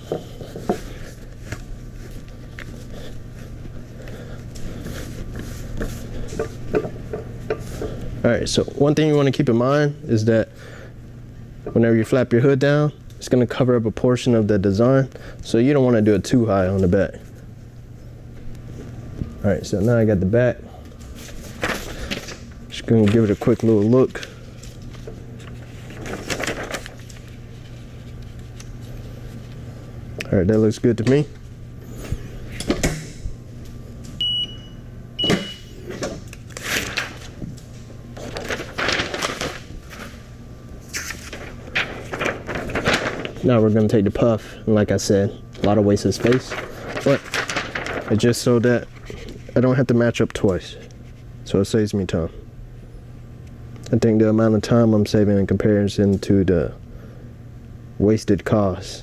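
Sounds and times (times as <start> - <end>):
low electrical hum: 0.0 - 59.0
paper and fabric rustling: 0.2 - 6.7, 21.0 - 29.6, 36.5 - 44.2, 45.7 - 49.6.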